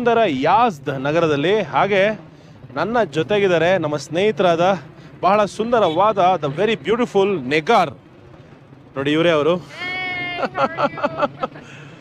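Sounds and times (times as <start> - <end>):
low street background: 0.0 - 12.0
man calling out: 5.4 - 6.8
woman's high greeting call: 9.7 - 11.1.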